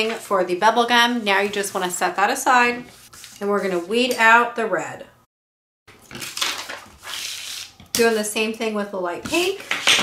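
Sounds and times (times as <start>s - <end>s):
vinyl sheets rustling: 2.6s - 4.1s, 6.0s - 8.5s.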